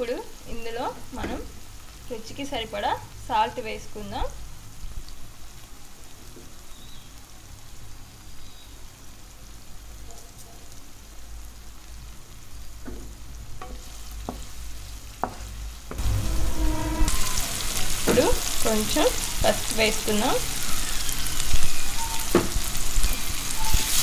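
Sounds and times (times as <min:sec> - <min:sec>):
vegetables sizzling in oil: 0:00.0 - 0:24.0.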